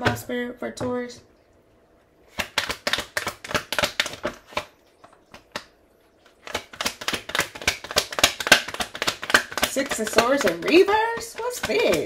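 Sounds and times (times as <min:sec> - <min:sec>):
cards being shuffled: 0:02.3 - 0:04.7, 0:06.4 - 0:12.0.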